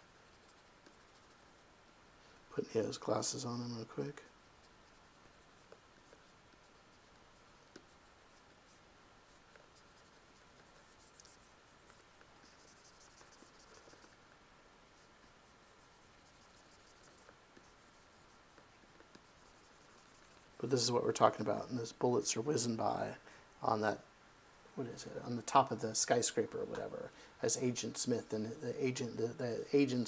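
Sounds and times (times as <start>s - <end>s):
stylus scratching on tablet: 0.0s - 1.7s, 2.6s - 14.3s, 14.9s - 24.0s, 24.7s - 30.0s.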